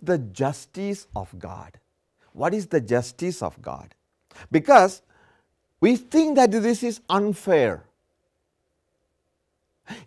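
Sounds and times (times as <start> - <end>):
man inhaling: 5.1 - 5.6.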